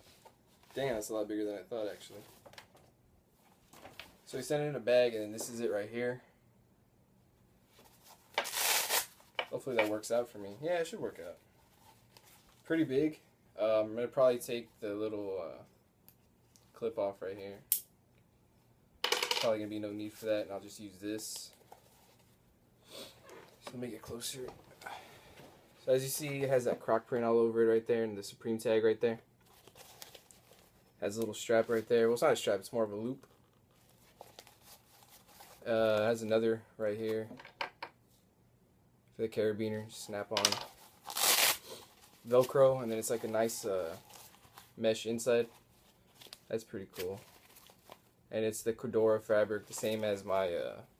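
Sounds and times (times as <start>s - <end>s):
nylon pouch rustling: 7.8s - 9.4s, 29.4s - 30.8s, 33.2s - 35.6s, 40.7s - 44.8s, 45.4s - 48.2s
fabric rubbing: 40.8s - 44.8s.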